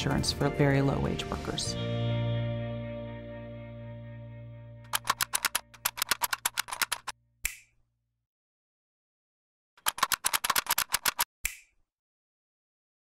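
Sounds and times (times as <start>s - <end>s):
rapid mechanical clicks: 4.9s - 7.1s, 9.8s - 11.3s.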